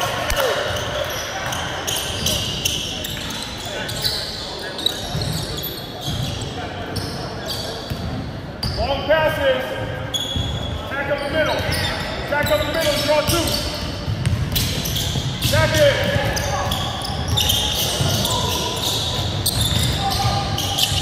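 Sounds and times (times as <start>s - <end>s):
sneakers squeaking on court: 0.0s - 9.1s, 9.8s - 21.0s
voices echoing in gym: 0.0s - 21.0s.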